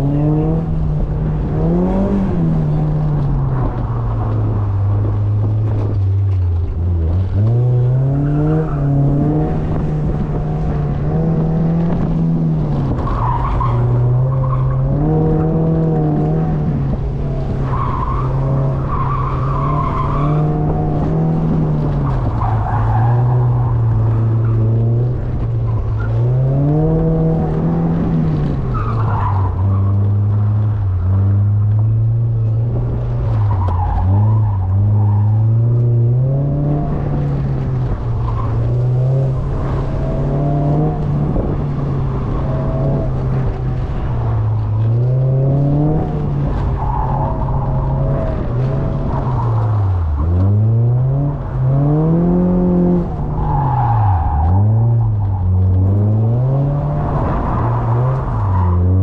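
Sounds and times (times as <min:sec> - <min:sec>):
car engine revving: 0:00.0 - 0:59.0.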